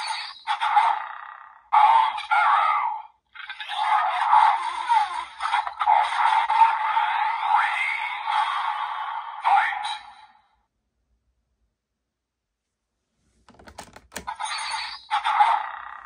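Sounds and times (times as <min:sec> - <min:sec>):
toy electronic sound effects: 0:14.1 - 0:15.6.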